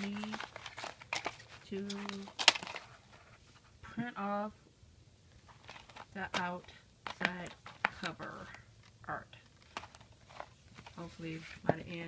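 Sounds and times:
woman speaking: 0.0 - 0.5, 1.6 - 2.4, 3.9 - 4.6, 6.1 - 9.5, 10.9 - 12.0.

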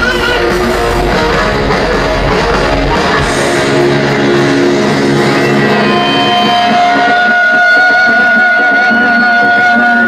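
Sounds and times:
heavy metal band final chord: 0.0 - 8.9
crowd cheering: 0.0 - 10.0
higher guitar tone: 0.0 - 10.0.

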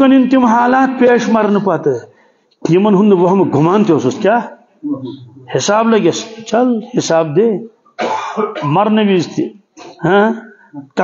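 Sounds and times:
man clearing throat: 8.0 - 8.8.

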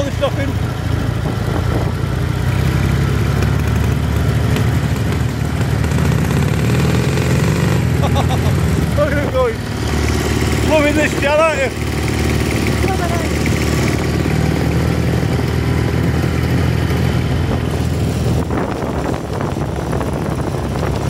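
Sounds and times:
voices: 0.0 - 0.8, 8.0 - 11.9, 12.5 - 13.9
motorcycle passing: 0.0 - 21.0
vehicle engine at low revs: 0.0 - 21.0.

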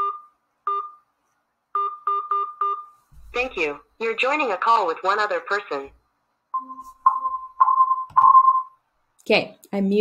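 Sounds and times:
phone connection beeps: 6.6 - 8.8.

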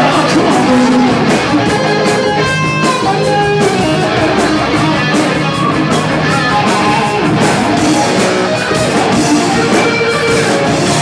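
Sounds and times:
electric guitar long held notes: 0.0 - 11.0
live rock band playing: 0.0 - 11.0.

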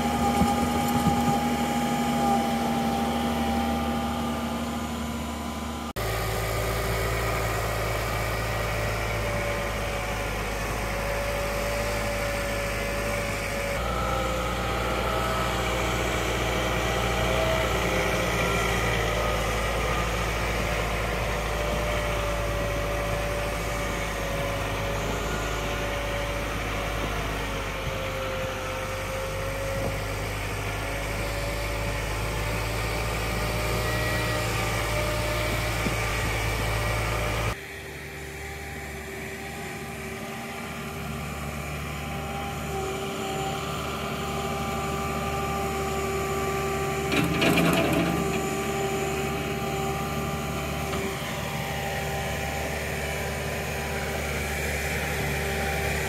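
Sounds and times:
tractor diesel engine running: 0.0 - 56.0
whine over engine: 0.0 - 56.0.

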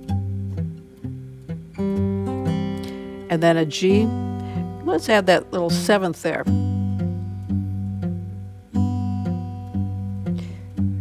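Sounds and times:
fingerpicked acoustic guitar: 0.0 - 11.0.

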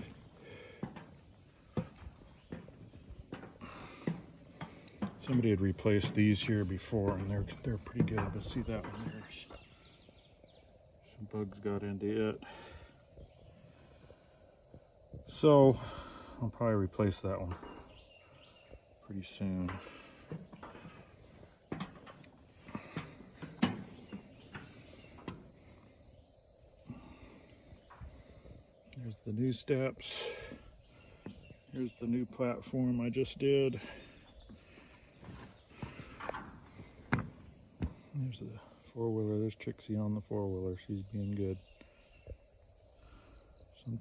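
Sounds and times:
footsteps on wooden boards: 0.0 - 9.7, 33.8 - 38.1
high-pitched insect chorus: 0.0 - 44.0.

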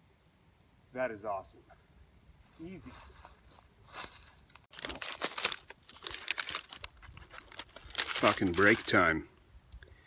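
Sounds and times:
foil wrapper crinkling: 4.6 - 9.2.

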